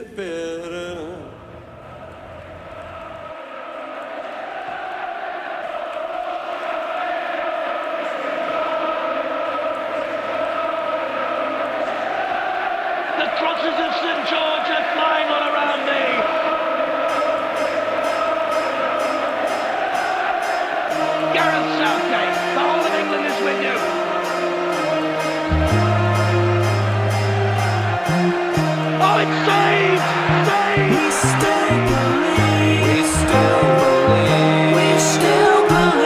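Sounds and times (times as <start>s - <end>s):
voices singing wordless chant: 0.0s - 36.0s
steady beat: 20.9s - 36.0s.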